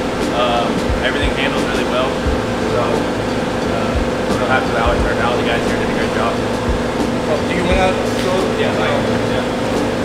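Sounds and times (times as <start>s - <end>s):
ventilation hum: 0.0s - 10.0s
indistinct talking: 0.2s - 10.0s.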